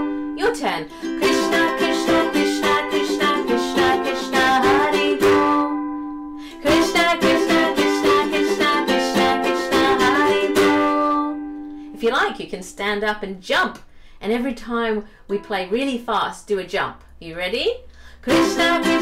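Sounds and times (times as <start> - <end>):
ukulele strummed fast: 0.9 - 5.6, 6.6 - 11.1, 18.3 - 19.0.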